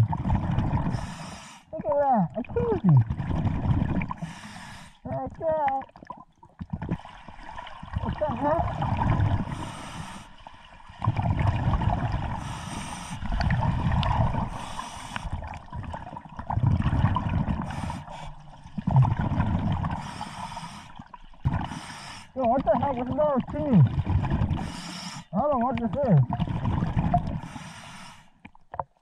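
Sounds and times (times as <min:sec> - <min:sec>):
exhaust bubbling underwater: 0:00.0 - 0:01.2, 0:01.8 - 0:04.4, 0:05.0 - 0:09.8, 0:10.6 - 0:27.6.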